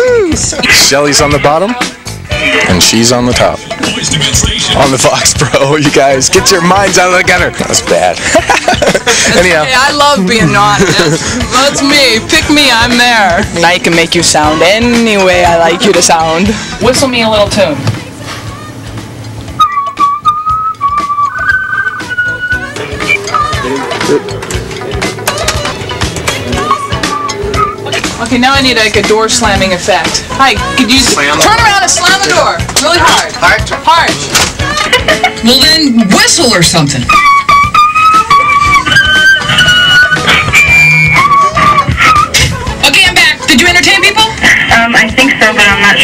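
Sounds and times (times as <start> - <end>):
background music with a beat: 0.0 - 46.0
person whistling a tune: 19.6 - 23.6, 37.1 - 42.5.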